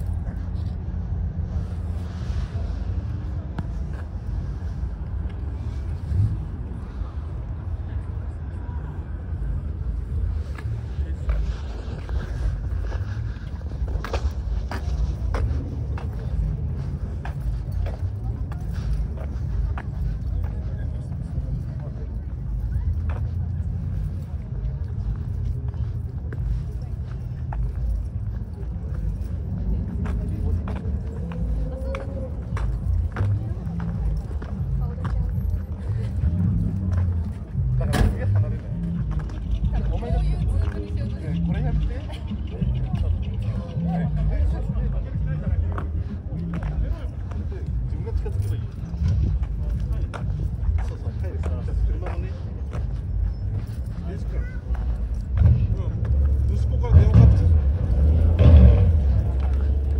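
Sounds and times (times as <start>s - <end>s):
low rumble: 0.0s - 59.9s
people talking: 0.0s - 59.9s.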